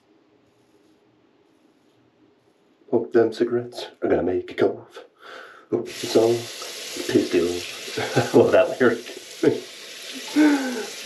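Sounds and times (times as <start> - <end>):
tap water running into sink: 5.9 - 11.0
man laughing: 7.9 - 11.0.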